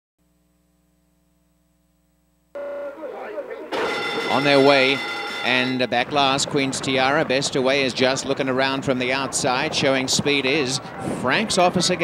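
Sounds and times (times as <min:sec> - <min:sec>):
starting gate electric bell ringing: 0:02.6 - 0:05.9
faint voices: 0:02.6 - 0:12.0.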